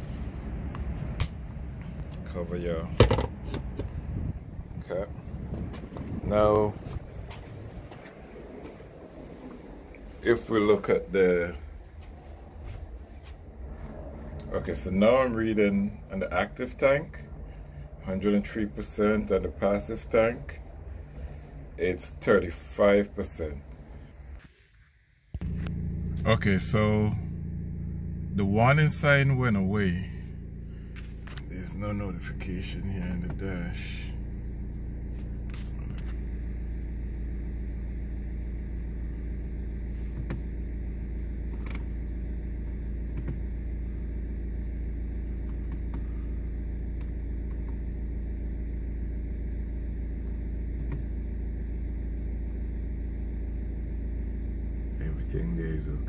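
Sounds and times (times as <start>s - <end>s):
steady low rumble: 0.0s - 56.0s
diesel engine starting and idling: 25.4s - 56.0s.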